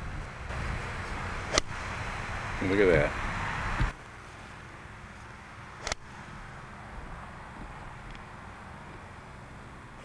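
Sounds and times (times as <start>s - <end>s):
golf club striking ball: 1.5s - 1.8s, 5.8s - 6.1s.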